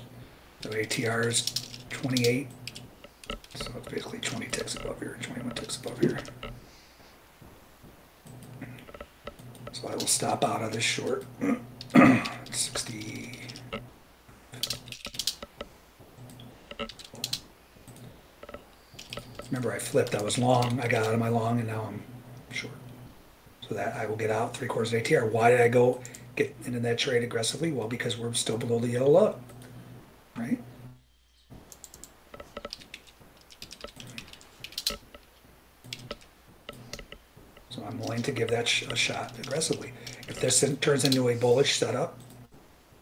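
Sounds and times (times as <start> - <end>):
keyboard and mouse clicking: 0.6 - 6.6, 14.5 - 21.2, 31.7 - 41.4.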